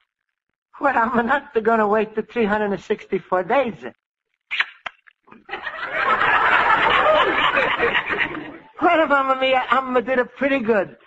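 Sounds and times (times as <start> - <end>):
studio audience laughing: 5.3 - 8.8.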